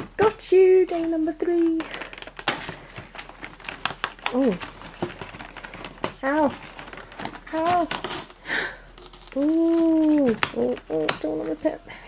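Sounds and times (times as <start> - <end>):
cardboard crackling and tearing: 0.9 - 11.8.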